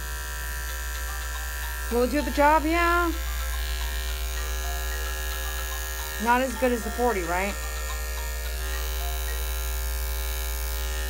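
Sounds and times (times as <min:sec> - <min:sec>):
electric clipper humming: 0:00.0 - 0:11.0.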